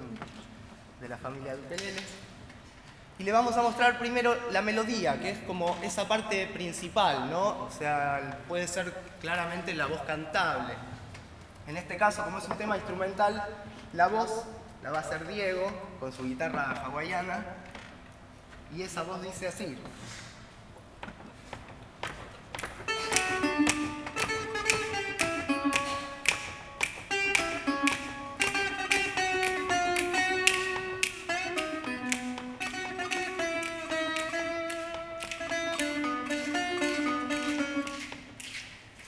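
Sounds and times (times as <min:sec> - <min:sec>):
slide guitar melody: 0:22.9 - 0:38.1.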